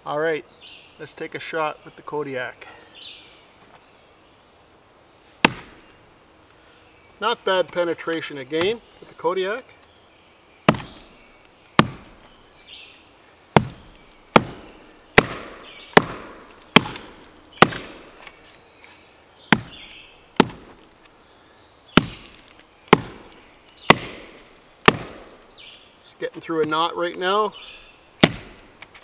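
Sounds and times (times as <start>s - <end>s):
knife chopping into wood: 5.4s - 5.9s, 8.6s - 8.8s, 10.7s - 11.1s, 11.8s - 12.3s, 13.6s - 18.3s, 19.5s - 20.8s, 22.0s - 25.4s, 28.2s - 28.6s.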